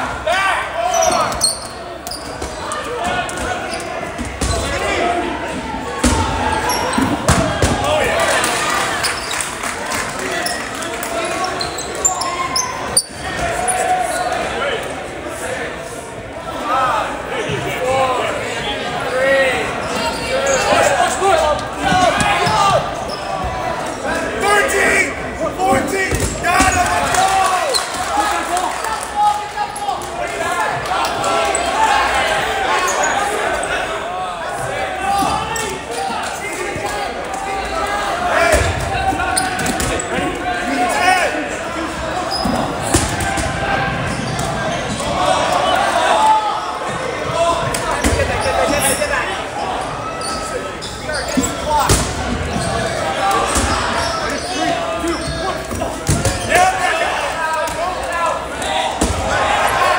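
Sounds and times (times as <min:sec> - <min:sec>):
players shouting: 0:00.0 - 0:59.9
dodgeballs thudding on gym floor: 0:06.0 - 0:08.1, 0:25.7 - 0:27.3, 0:38.5 - 0:40.3, 0:42.4 - 0:45.0, 0:47.2 - 0:48.4, 0:51.3 - 0:52.8, 0:53.4 - 0:54.0, 0:55.3 - 0:56.7, 0:58.8 - 0:59.5.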